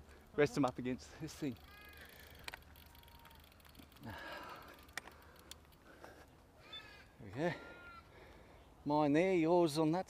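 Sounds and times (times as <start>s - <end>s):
faint animal calls: 6.6s - 8.2s.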